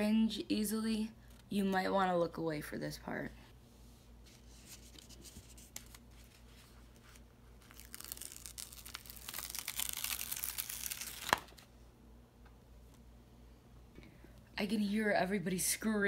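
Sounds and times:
plastic film crackling as peeled: 0:04.9 - 0:11.7
film snapping: 0:07.7 - 0:11.6.

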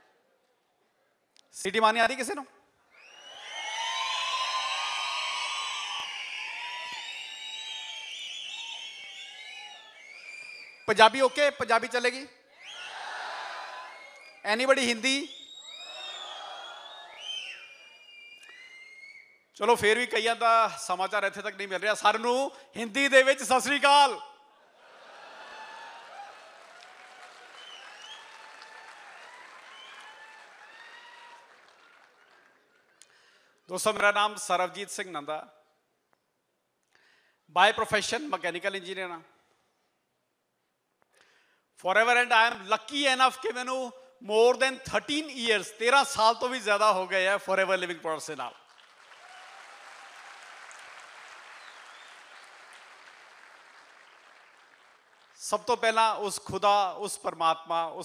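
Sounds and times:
audience applauding: 0:03.3 - 0:10.2, 0:25.1 - 0:33.2, 0:48.6 - 0:55.5.

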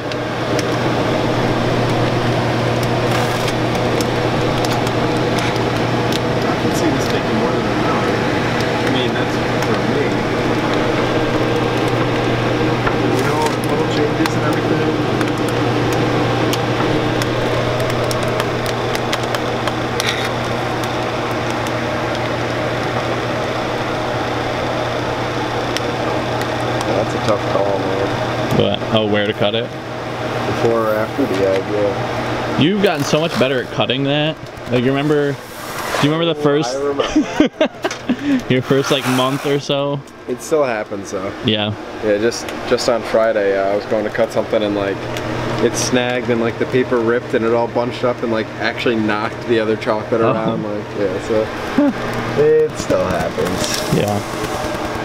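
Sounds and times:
machine motor hum and whir: 0:00.0 - 0:55.0.

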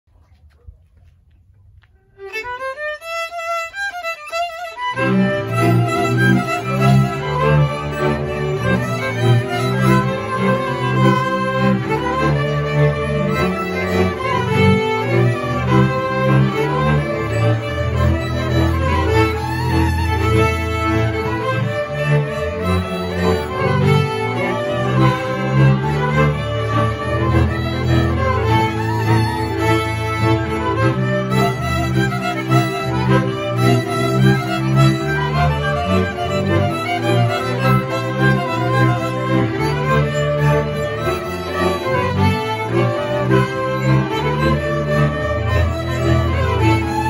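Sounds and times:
bowed bass line: 0:00.1 - 0:47.0
fiddles playing a dance tune: 0:02.1 - 0:47.0.

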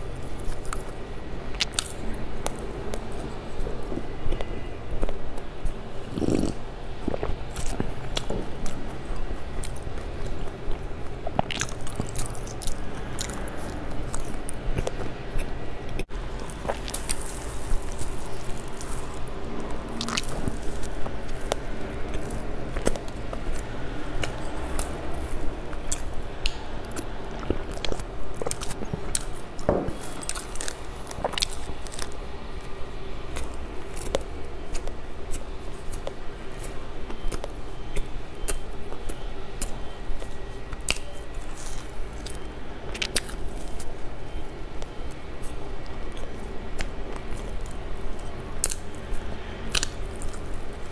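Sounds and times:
biting and chewing bread: 0:00.0 - 0:50.9
sip and swallow: 0:06.0 - 0:07.4
wet mouth clicks: 0:06.0 - 0:08.3, 0:11.3 - 0:21.6.

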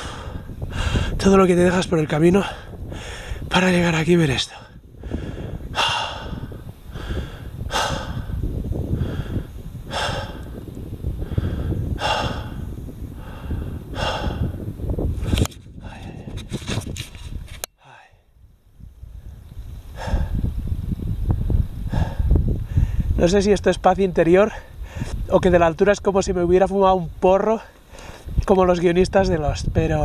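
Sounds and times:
man breathing hard: 0:00.0 - 0:01.2, 0:02.4 - 0:03.5, 0:04.5 - 0:16.5, 0:17.8 - 0:18.4, 0:19.9 - 0:20.6, 0:21.8 - 0:23.2, 0:24.5 - 0:25.2, 0:27.7 - 0:28.4
wind rumbling on microphone: 0:00.0 - 0:30.0.

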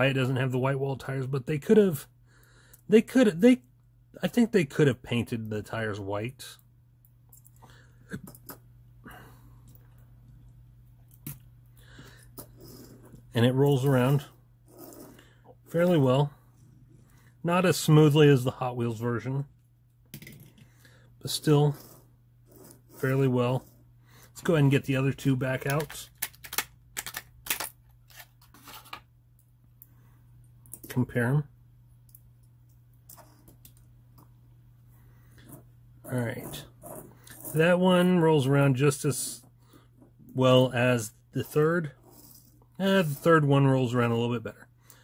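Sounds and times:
low electrical hum: 0:00.0 - 0:45.0
metal toy cars set on table: 0:12.2 - 0:18.4, 0:19.5 - 0:29.2, 0:32.0 - 0:34.3, 0:35.3 - 0:38.4, 0:39.2 - 0:44.2.

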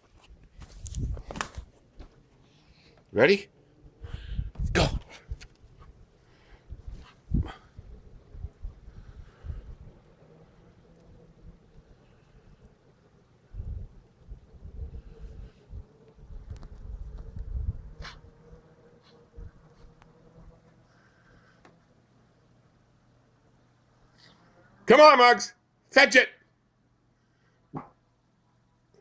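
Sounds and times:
faint steady hum: 0:00.0 - 0:24.9, 0:25.6 - 0:29.0
wind rumbling on microphone: 0:00.3 - 0:01.4, 0:03.9 - 0:20.6.

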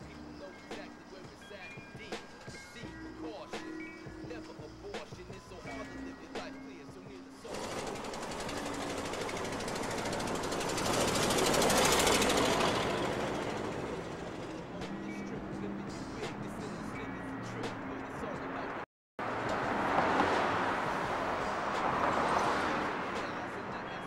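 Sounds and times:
vehicle passing by: 0:07.5 - 0:24.0.

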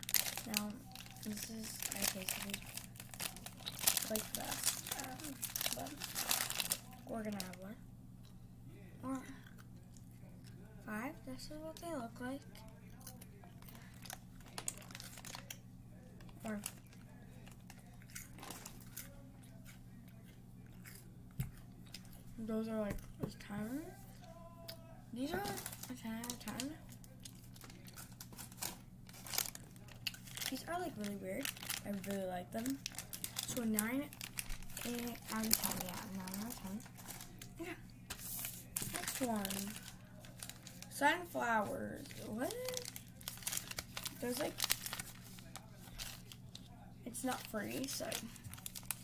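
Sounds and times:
plastic wrapper crinkling: 0:00.0 - 0:07.6, 0:12.5 - 0:15.6, 0:16.2 - 0:19.2, 0:25.2 - 0:49.0
steady low hum: 0:00.0 - 0:49.0
girl speaking: 0:00.4 - 0:02.7, 0:04.0 - 0:06.0, 0:07.0 - 0:07.8, 0:10.9 - 0:12.5, 0:16.4 - 0:16.7, 0:22.4 - 0:24.0, 0:25.2 - 0:26.8, 0:30.5 - 0:32.8, 0:33.4 - 0:34.2, 0:34.8 - 0:36.8, 0:38.8 - 0:39.8, 0:40.9 - 0:43.0, 0:44.2 - 0:44.6, 0:47.0 - 0:48.4
person chewing crunchy snack: 0:17.6 - 0:22.2.

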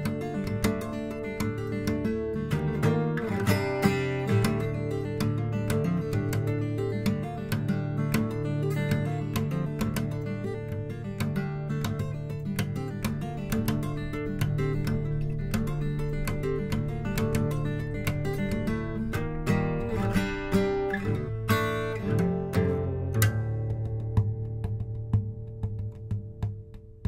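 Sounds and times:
fingerstyle acoustic guitar: 0:00.0 - 0:27.0.

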